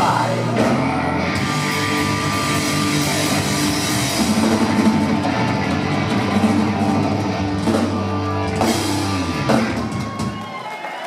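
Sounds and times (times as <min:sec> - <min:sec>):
live rock band playing: 0:00.0 - 0:10.6.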